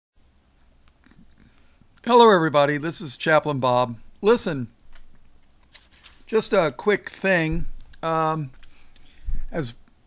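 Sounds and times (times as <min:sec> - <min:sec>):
low steady hum: 0:00.2 - 0:10.0
soft faint sounds: 0:03.9 - 0:10.0.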